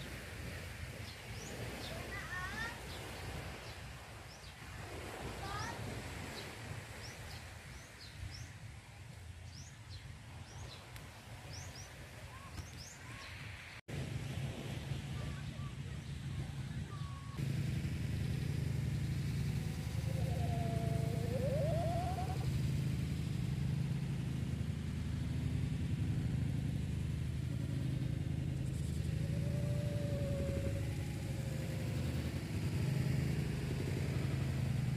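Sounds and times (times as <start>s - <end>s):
motor humming: 17.4s - 34.9s
faint wavering tone: 19.2s - 22.6s, 27.6s - 34.4s.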